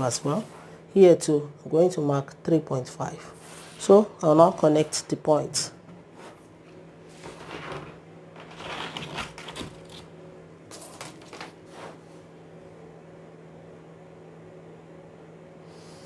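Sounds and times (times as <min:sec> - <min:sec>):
steady low hum: 0:00.0 - 0:16.0
plastic ruler sliding on paper: 0:03.4 - 0:03.8
paper rustling: 0:07.1 - 0:10.1, 0:10.7 - 0:12.0.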